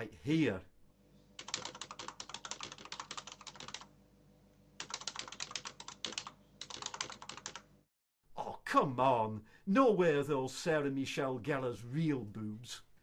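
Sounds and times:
rapid typing on keyboard: 1.4 - 3.9, 4.8 - 7.7.

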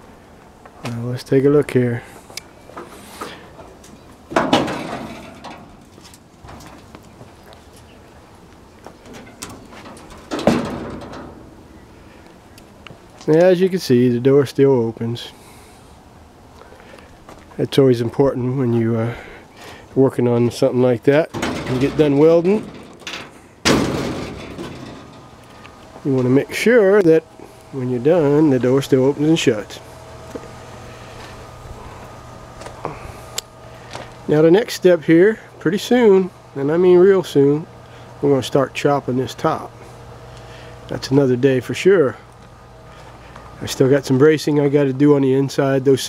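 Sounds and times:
rusty steel door scraping open: 2.8 - 7.0, 8.9 - 12.2, 21.2 - 25.6.

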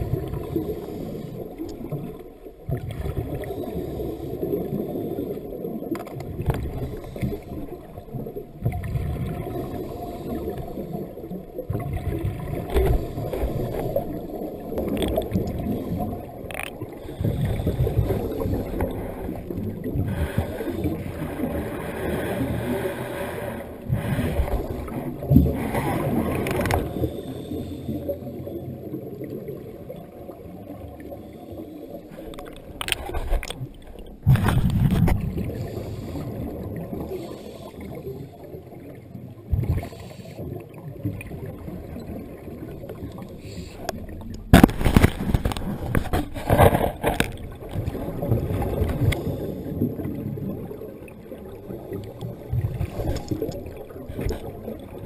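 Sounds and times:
low rumble of water: 0.0 - 55.0
underwater bubbles gurgling: 0.0 - 55.0.

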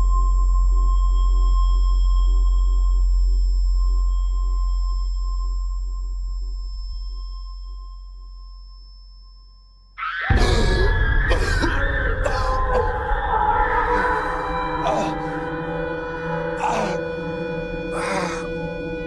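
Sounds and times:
droning film-score pad: 0.0 - 9.0, 10.3 - 19.0
man crying out in pain: 10.1 - 13.1, 16.6 - 17.1, 17.9 - 18.5.

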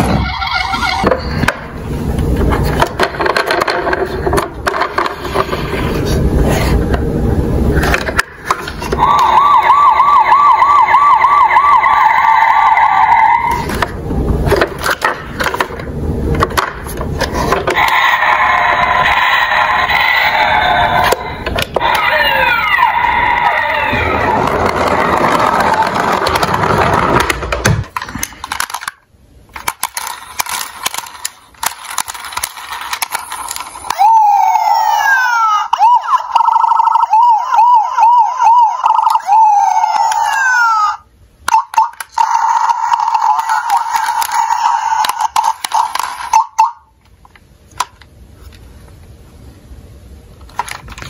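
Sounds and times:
toy siren wailing and yelping: 0.0 - 1.4, 8.9 - 13.8, 17.7 - 26.5, 33.0 - 46.9
toy electronic sound effects: 0.0 - 1.5, 8.6 - 13.9, 17.7 - 27.4, 29.5 - 47.0
plastic toy clicks: 28.0 - 34.0, 41.5 - 46.6.

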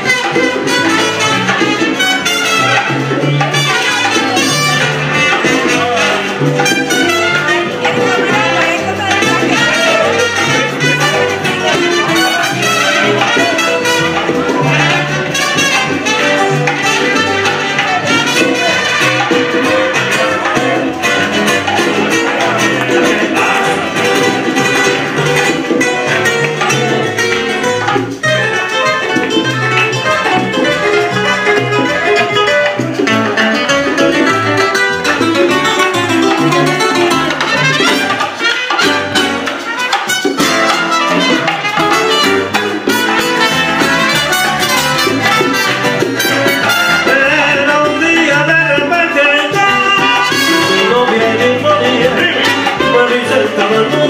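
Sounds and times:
drums and percussion: 0.0 - 54.0
guitars strummed and plucked: 0.0 - 54.0
man singing: 3.4 - 25.4, 46.2 - 54.0.

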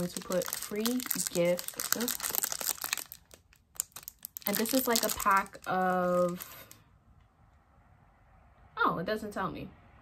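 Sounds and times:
plastic wrapping crinkling: 0.0 - 6.8.

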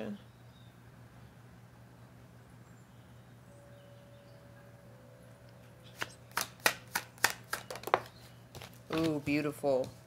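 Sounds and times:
cards slapping while shuffled: 6.0 - 9.3.

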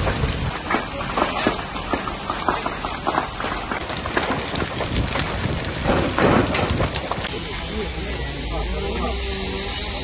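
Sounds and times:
fire crackling and popping: 0.0 - 8.1.

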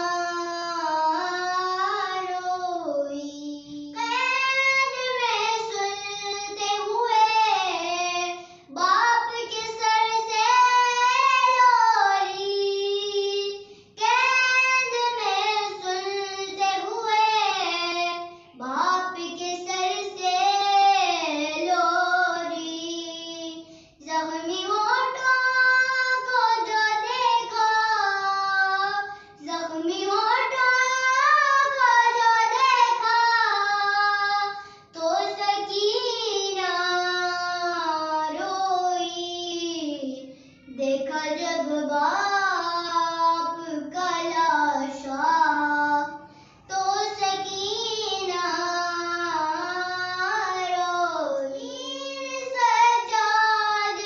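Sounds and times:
girl singing a lament: 0.0 - 54.0.

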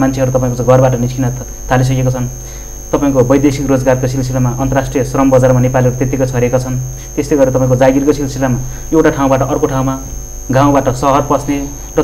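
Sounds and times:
high steady whine: 0.0 - 12.0
low electrical hum: 0.0 - 12.0
man talking: 0.0 - 12.0.

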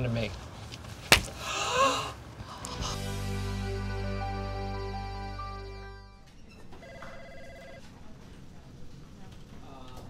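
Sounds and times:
telephone ringing: 6.8 - 8.0.

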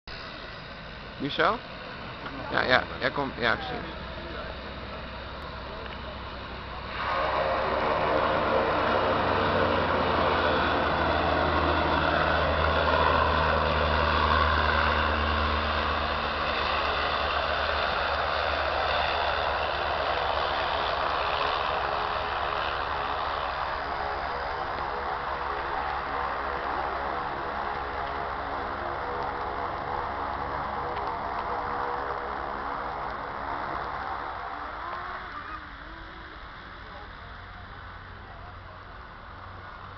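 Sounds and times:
turboprop plane landing: 0.1 - 39.9.

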